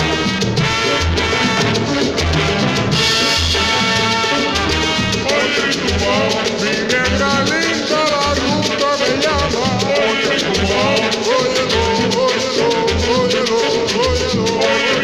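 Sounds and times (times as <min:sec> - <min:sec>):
bass beat: 0:00.0 - 0:10.0, 0:10.6 - 0:14.7
maracas: 0:00.0 - 0:15.0
salsa music over sound system: 0:00.0 - 0:15.0
person singing: 0:05.2 - 0:15.0.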